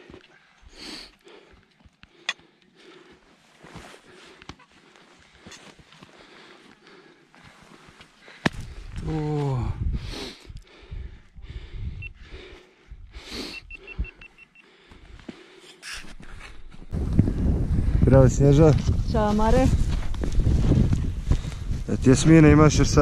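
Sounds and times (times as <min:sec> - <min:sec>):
boots and ice axes crunching snow: 0:03.0 - 0:09.5, 0:18.6 - 0:21.8
wind buffeting microphone: 0:08.6 - 0:13.2, 0:16.7 - 0:23.0
person grunting: 0:09.0 - 0:09.8.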